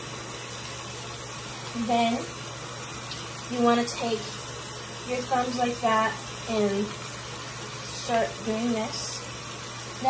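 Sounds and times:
water running from sink tap: 0.0s - 10.0s.

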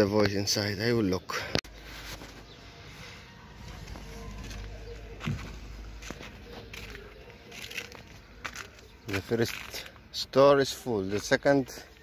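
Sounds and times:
footsteps on concrete: 3.6s - 10.0s.

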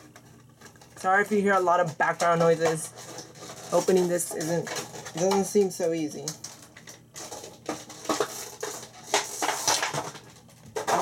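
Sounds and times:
plastic packaging crackling: 0.0s - 11.0s.

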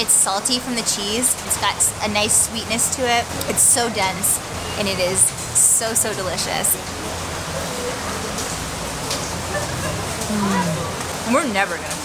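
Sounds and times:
steady rain falling: 5.2s - 12.0s
faint voices of people: 7.4s - 12.0s.

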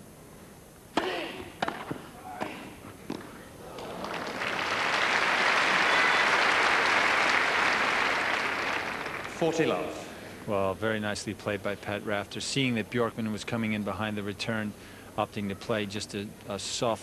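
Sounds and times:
racket hitting tennis ball: 0.9s - 3.4s
crowd applause: 3.6s - 10.0s.

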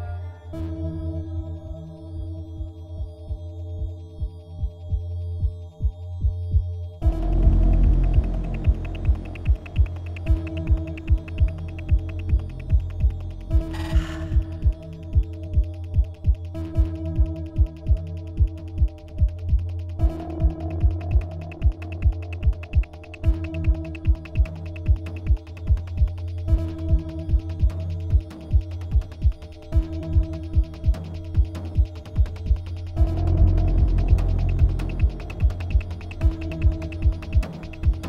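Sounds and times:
electronic ambient drone: 0.0s - 38.0s.

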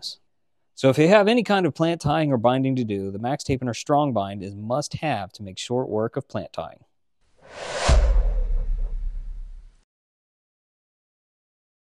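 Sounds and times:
whoosh: 7.4s - 9.8s
deep boom with low rumble: 7.5s - 9.8s.

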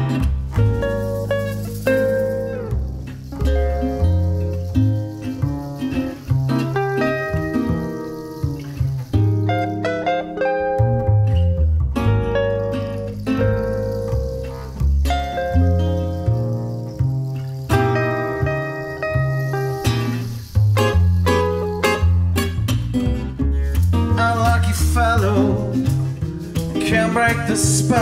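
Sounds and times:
acoustic guitar melodic runs: 0.0s - 28.0s
upright double bass: 0.0s - 28.0s.

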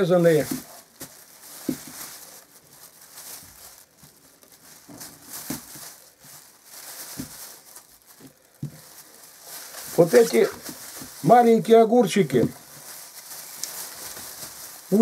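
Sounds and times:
cucumbers knocking into bag: 0.0s - 2.3s, 4.8s - 7.6s, 9.9s - 11.4s
plastic bag rustling: 0.0s - 15.0s.

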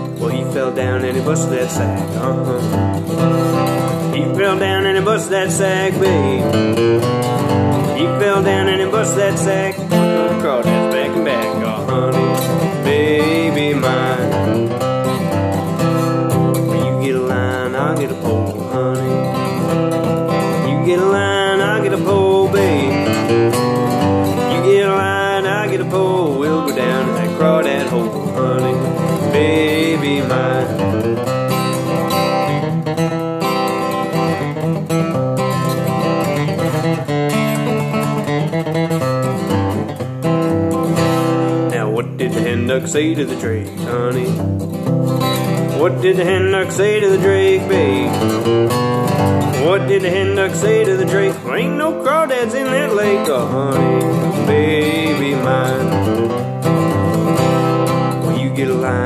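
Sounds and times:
acoustic guitar picking: 0.0s - 59.0s.

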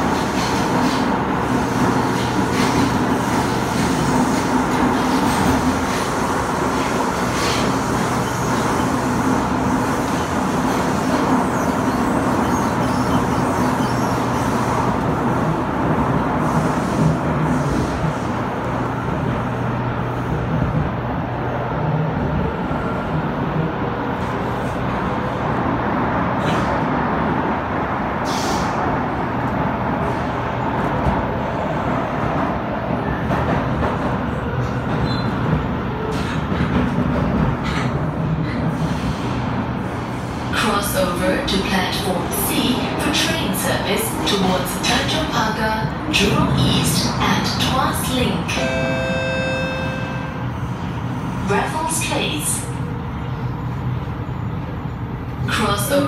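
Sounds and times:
metro car running in tunnel: 0.0s - 56.0s.

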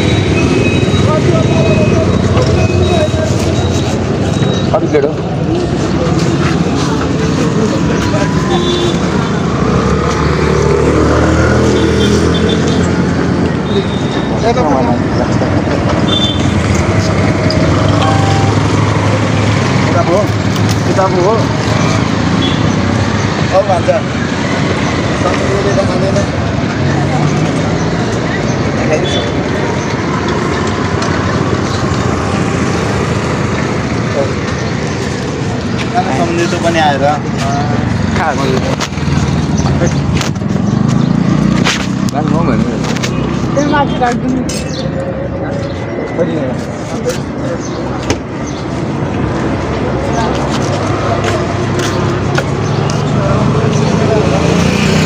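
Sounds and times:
road traffic rumble: 0.0s - 55.0s
people talking: 0.9s - 9.2s, 35.8s - 38.9s, 42.0s - 48.3s, 49.5s - 55.0s.

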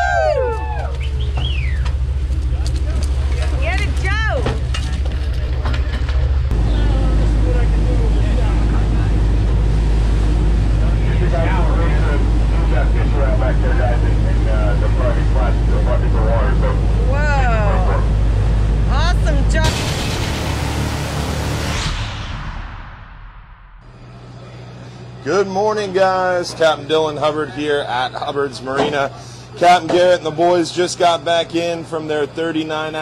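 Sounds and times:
boat engine droning: 0.0s - 21.8s, 23.8s - 33.0s
water rushing past hull: 0.0s - 23.6s.

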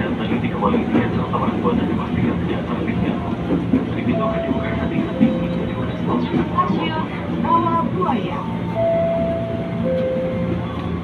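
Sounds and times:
electric train hum and track rumble: 0.0s - 11.0s.

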